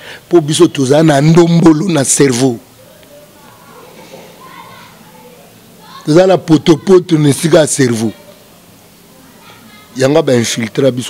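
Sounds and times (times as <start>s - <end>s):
children playing voices: 2.7s - 10.6s.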